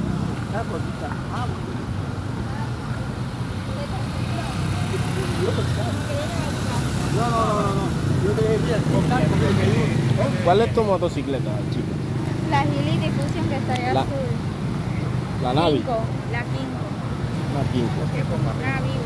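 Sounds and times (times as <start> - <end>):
faint voices talking: 0.0 - 19.0
street traffic engine hum: 0.0 - 19.0.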